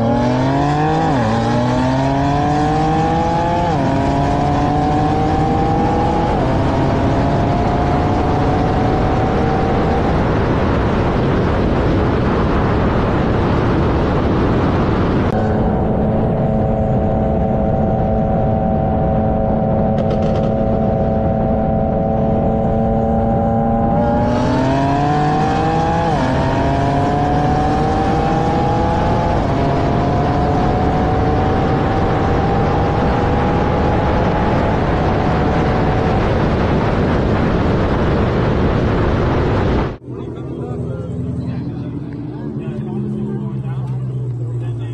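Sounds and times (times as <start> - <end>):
wind rush: 0.0 - 40.1
car engine at full throttle: 0.0 - 44.9.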